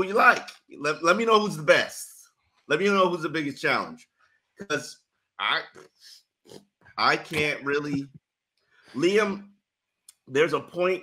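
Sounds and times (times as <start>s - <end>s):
man speaking: 0.0s - 4.0s, 4.6s - 6.2s, 7.0s - 8.1s, 9.0s - 9.4s, 10.1s - 11.0s.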